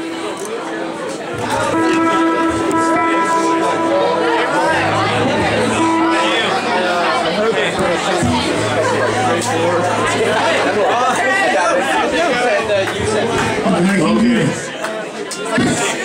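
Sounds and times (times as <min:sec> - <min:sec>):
crowd chattering: 0:00.0 - 0:16.0
guitar notes: 0:01.3 - 0:14.0.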